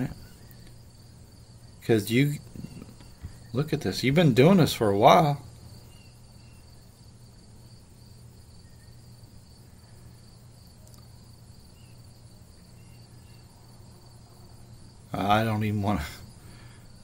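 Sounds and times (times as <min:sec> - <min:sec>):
light hiss: 0:00.0 - 0:17.0.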